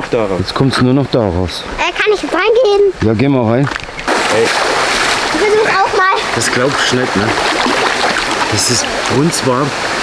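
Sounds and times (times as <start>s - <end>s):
water splashing and sloshing: 0.0s - 10.0s.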